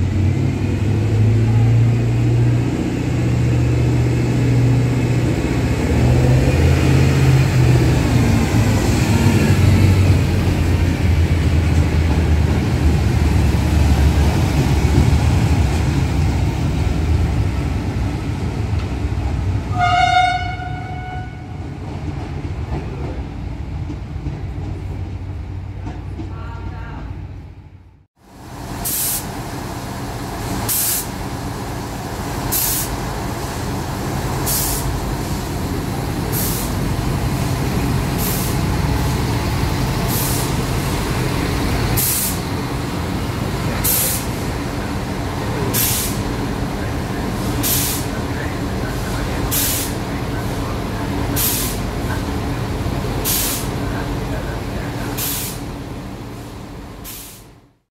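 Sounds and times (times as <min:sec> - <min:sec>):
diesel railcar engine idling: 0:22.8 - 0:57.8
compressed air hiss: 0:28.8 - 0:29.3, 0:30.6 - 0:31.2, 0:32.5 - 0:33.0, 0:34.4 - 0:34.9, 0:36.3 - 0:36.8, 0:38.1 - 0:38.7, 0:40.1 - 0:40.6, 0:42.0 - 0:42.4, 0:43.8 - 0:44.4, 0:45.7 - 0:46.3, 0:47.4 - 0:48.2, 0:49.5 - 0:50.0, 0:51.3 - 0:51.9, 0:53.2 - 0:53.8, 0:55.2 - 0:55.7, 0:57.0 - 0:57.6.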